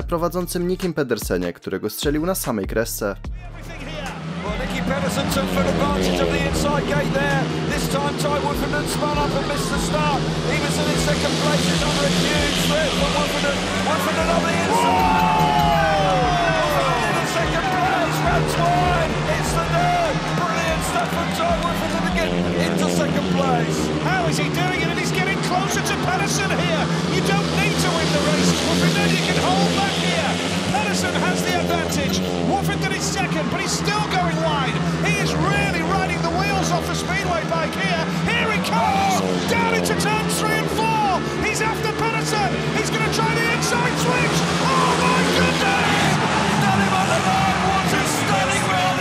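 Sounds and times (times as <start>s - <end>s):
motorcycle engines racing: 3.9s - 49.0s.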